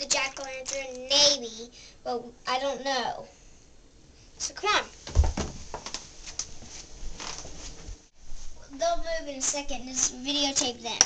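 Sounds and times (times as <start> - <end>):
child's quick footsteps: 5.0 - 8.0.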